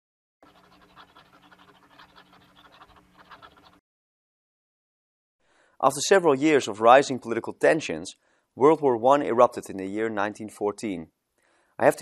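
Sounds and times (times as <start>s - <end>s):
marker scratching on paper: 0.4s - 3.8s.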